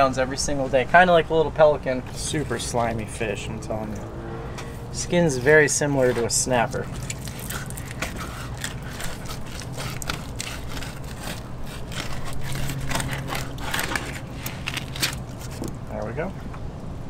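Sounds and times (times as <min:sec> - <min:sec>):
low hum: 0:00.0 - 0:17.0
knife scraping fish skin: 0:05.2 - 0:15.8.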